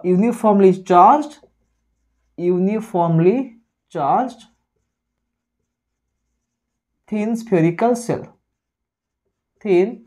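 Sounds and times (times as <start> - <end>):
marker writing on whiteboard: 0.0 - 10.0.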